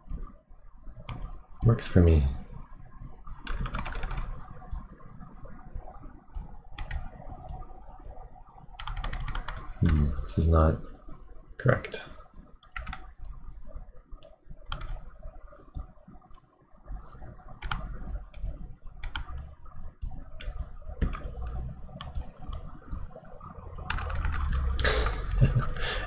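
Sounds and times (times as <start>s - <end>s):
low steady hum: 0.0s - 26.0s
computer keyboard keys clicking: 1.0s - 1.4s, 3.4s - 4.8s, 6.3s - 8.2s, 8.8s - 10.2s, 12.6s - 13.4s, 14.2s - 15.1s, 17.6s - 19.4s, 20.0s - 21.4s, 23.9s - 25.2s.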